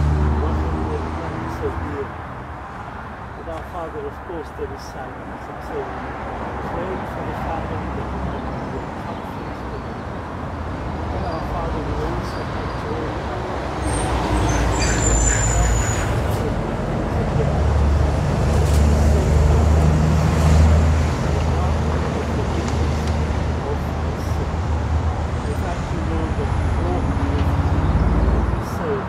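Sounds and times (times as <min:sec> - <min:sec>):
road traffic rumble: 0:00.0 - 0:29.0
vehicle passing: 0:00.0 - 0:29.0.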